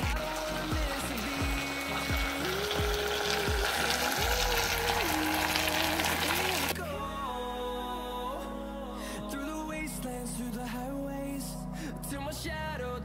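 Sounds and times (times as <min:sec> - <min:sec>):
food frying in a pot: 0:00.0 - 0:06.8
pop song with singing: 0:00.0 - 0:13.0.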